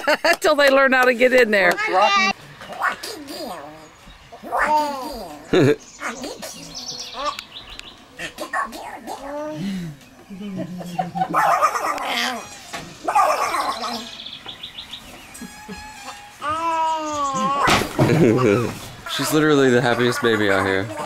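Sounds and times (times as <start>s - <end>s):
baby laughing and squealing: 4.4s - 5.5s, 11.3s - 14.1s, 15.4s - 21.0s.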